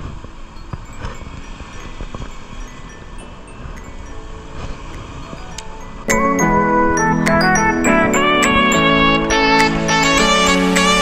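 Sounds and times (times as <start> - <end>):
faint tinkling tones: 0.0 - 11.0
sea waves: 0.0 - 11.0
steady wind: 0.0 - 11.0.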